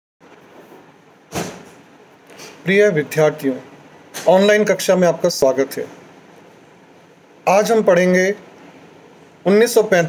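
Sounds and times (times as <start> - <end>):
sudden thump: 1.3 - 1.8.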